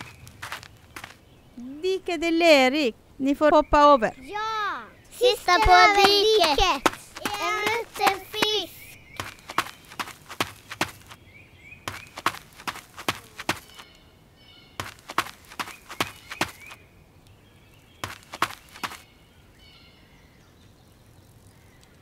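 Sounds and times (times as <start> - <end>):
footsteps sharp taps: 0.0 - 1.2, 5.2 - 11.2, 11.9 - 13.9, 14.8 - 16.8, 18.0 - 19.0.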